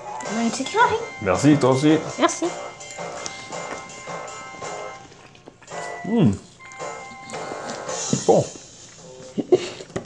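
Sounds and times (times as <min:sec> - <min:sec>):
background music: 0:00.0 - 0:09.8.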